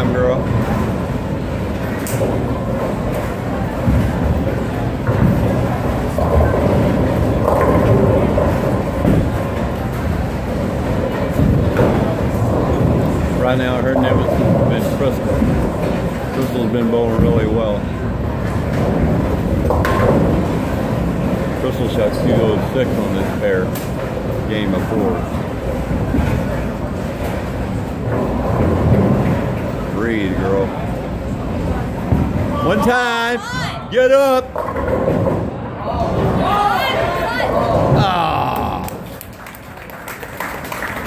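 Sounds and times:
bowling balls rolling: 0.0 - 32.9, 34.4 - 41.0
people clapping and cheering: 37.3 - 41.0.

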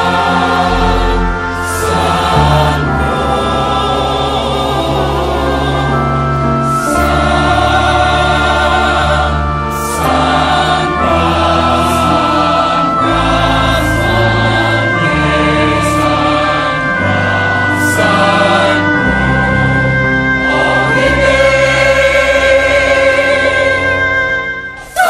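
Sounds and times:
choir singing in harmony: 0.0 - 25.0.

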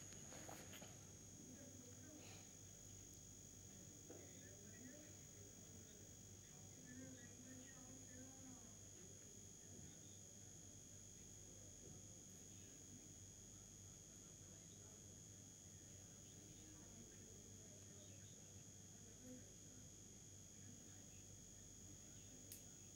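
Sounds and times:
low hum: 0.0 - 8.4
faint distant voices: 0.0 - 22.9
faint high-pitched whine: 0.0 - 22.9.

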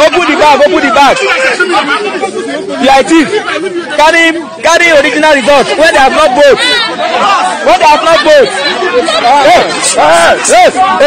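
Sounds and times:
excited crowd chatter: 0.0 - 11.0.

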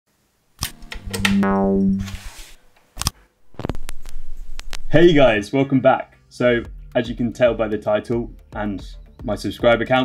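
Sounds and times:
low buzzy synthesizer note: 1.0 - 2.4.

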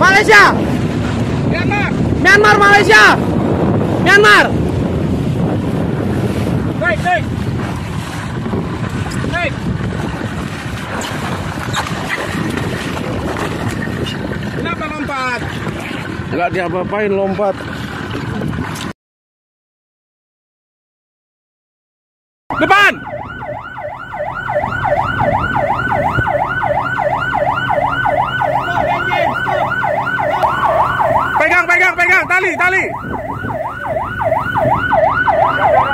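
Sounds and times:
man shouting: 0.0 - 0.6, 2.3 - 3.2, 4.0 - 4.5, 22.5 - 23.0, 28.5 - 29.7
water splashing against boat: 0.0 - 18.9, 22.6 - 35.9
wind buffeting microphone: 0.0 - 18.9, 23.0 - 35.9
electronic siren yelping: 22.5 - 35.9.

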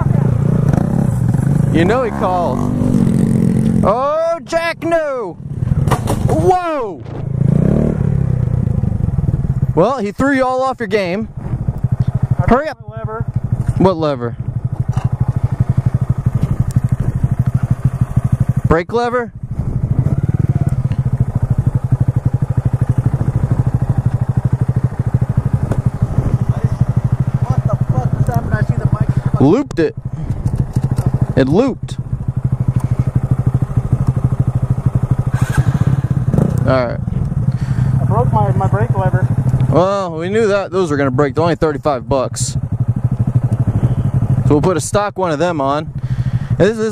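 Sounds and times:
motorcycle engine at low revs: 0.0 - 46.9.

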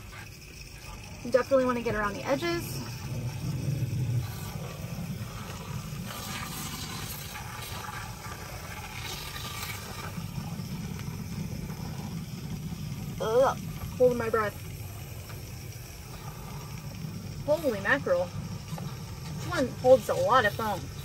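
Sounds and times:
low steady rumble: 0.0 - 21.0
aerosol spray hissing: 12.9 - 21.0.

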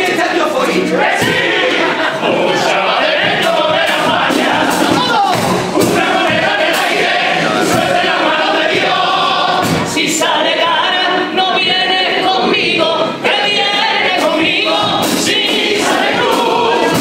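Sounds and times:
male chorus singing in harmony: 0.0 - 17.0
sharp drum or cymbal hits: 2.7 - 10.2.

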